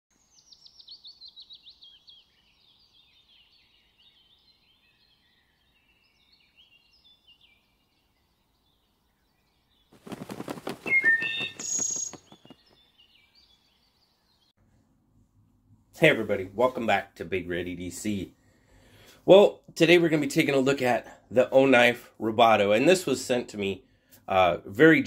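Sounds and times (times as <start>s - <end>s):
songbird singing: 0.1s - 14.6s
rapid rattling burst: 10.0s - 12.5s.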